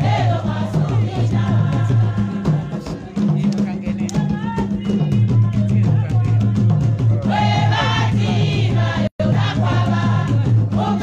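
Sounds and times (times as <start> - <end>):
choir singing over music: 0.0 - 3.1, 7.2 - 11.0.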